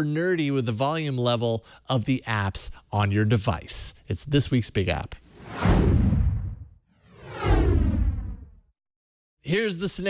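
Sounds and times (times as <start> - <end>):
whoosh sweeping down in pitch: 5.4 - 8.6
deep low rumble: 5.5 - 8.6.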